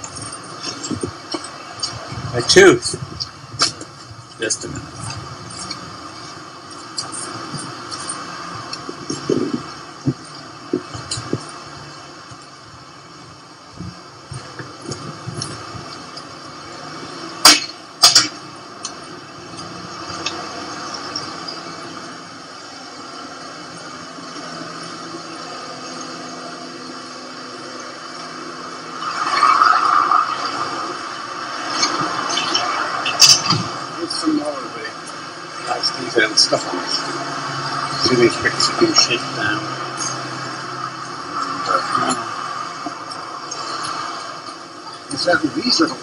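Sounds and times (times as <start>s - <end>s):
indistinct talking: 0.0s - 12.3s, 16.6s - 46.0s
steady background noise: 0.0s - 46.0s.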